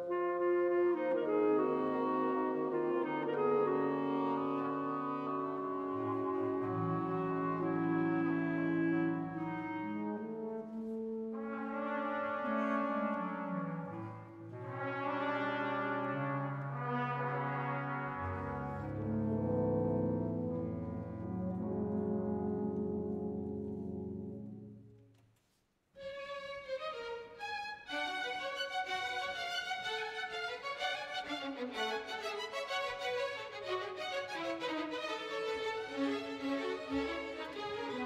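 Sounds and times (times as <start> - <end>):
french horns: 0.0 - 25.1
orchestra playing slow chords: 1.0 - 24.8.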